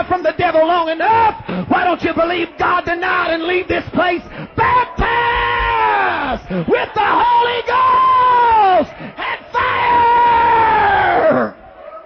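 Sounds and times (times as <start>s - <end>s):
preacher shouting high-pitched cry: 4.1s - 11.6s.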